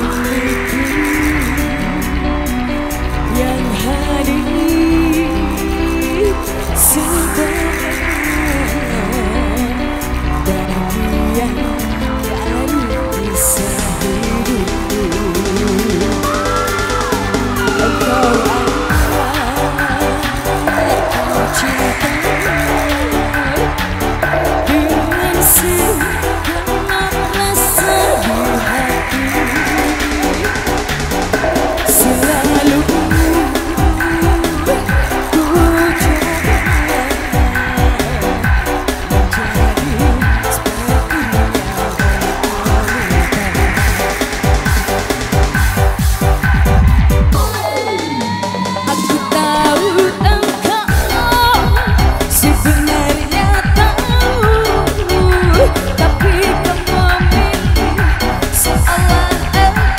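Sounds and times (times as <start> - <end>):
live band music: 0.0 - 59.9
deep electronic kick drum: 4.7 - 59.9.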